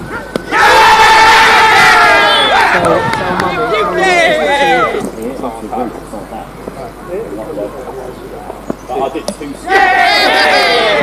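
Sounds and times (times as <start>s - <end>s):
fielders shouting together: 0.1s - 5.0s, 9.6s - 11.0s.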